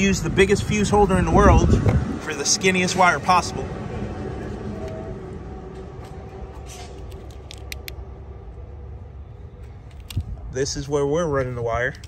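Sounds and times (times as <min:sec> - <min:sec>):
wiring clicks and rustles: 0:06.0 - 0:08.0.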